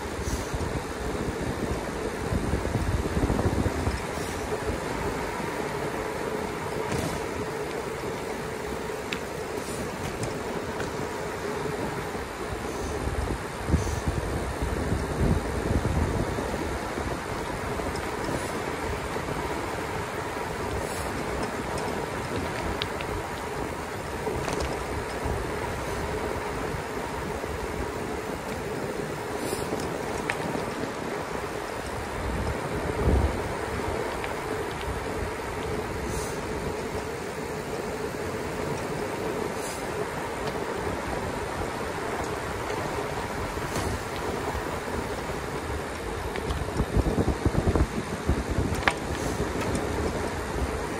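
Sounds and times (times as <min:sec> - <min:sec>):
tyre noise on asphalt: 0:00.0 - 0:50.9
wind rushing on microphone: 0:00.0 - 0:50.9.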